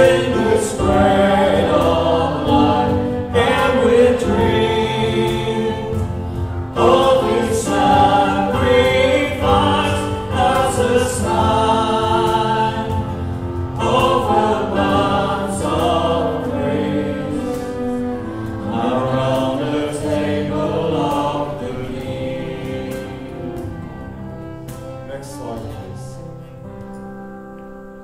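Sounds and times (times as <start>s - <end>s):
congregation singing a hymn: 0.0s - 28.0s
worship band playing: 0.0s - 28.0s.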